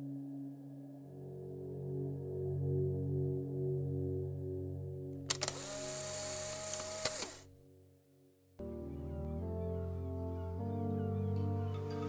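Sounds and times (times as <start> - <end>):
soft ambient music: 0.0 - 12.0
sharp clicks: 5.2 - 7.4
hiss with high whine: 5.4 - 7.4.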